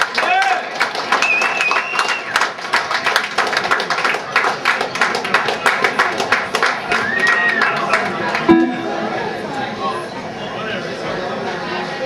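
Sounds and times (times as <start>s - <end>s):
audience clapping: 0.0s - 8.5s
crowd voices: 5.0s - 12.0s.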